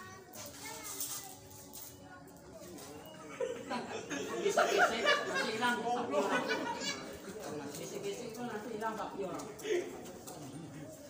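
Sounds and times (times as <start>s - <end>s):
faint voices: 0.0s - 11.0s
close conversation: 2.2s - 11.0s.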